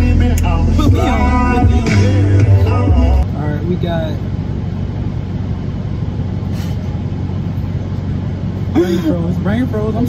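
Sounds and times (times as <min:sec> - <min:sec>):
music: 0:00.0 - 0:03.2
low hum inside car cabin: 0:00.0 - 0:10.0.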